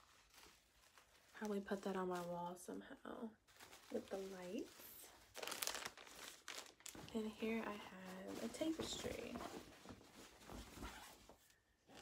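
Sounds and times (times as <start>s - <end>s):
crinkling and rustling: 0.0s - 12.0s.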